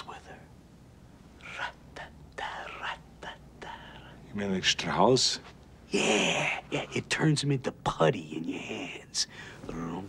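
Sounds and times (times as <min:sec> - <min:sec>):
man whispering: 0:00.0 - 0:00.5, 0:01.4 - 0:04.4, 0:08.1 - 0:10.0.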